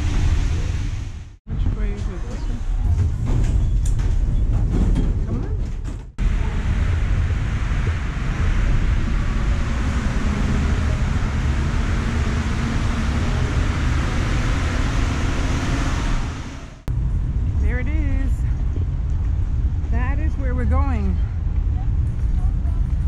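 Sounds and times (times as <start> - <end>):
underground train rumble and hiss: 0.0 - 4.5, 6.2 - 23.0
street traffic: 6.2 - 23.0.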